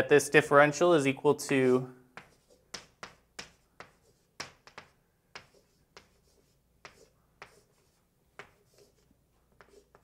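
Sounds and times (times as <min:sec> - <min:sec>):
chalk tapping on blackboard: 0:01.4 - 0:10.0
chalk scratching on blackboard: 0:01.5 - 0:10.0.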